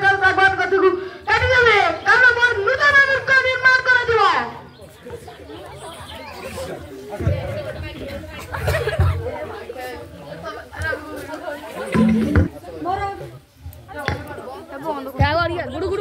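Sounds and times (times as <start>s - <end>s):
chatter of many voices: 0.0s - 16.0s
low thumps: 11.9s - 12.6s.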